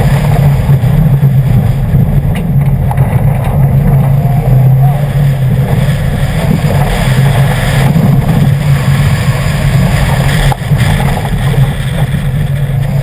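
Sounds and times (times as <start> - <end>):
car engine running hard: 0.0 - 13.0
tyre and gravel noise: 0.0 - 13.0.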